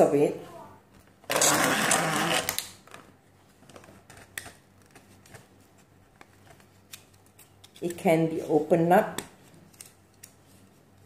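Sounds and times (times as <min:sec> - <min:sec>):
plastic handle grinding: 0:01.3 - 0:02.7.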